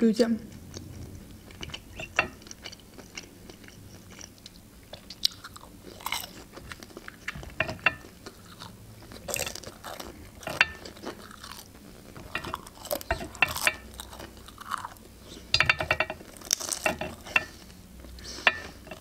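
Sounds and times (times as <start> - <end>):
chewing and crunching dumplings: 0.4 - 19.0.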